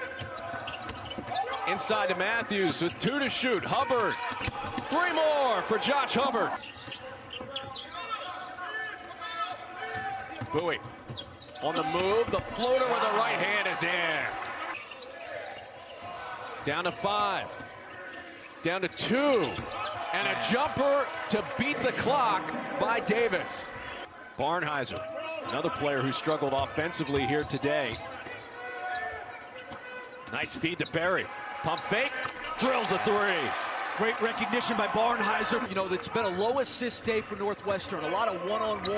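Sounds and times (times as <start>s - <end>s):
sneaker squeaks: 0.0s - 1.8s, 3.9s - 5.6s, 6.5s - 13.1s, 14.7s - 16.8s, 19.3s - 20.8s, 27.1s - 32.9s
arena crowd noise: 0.0s - 38.9s.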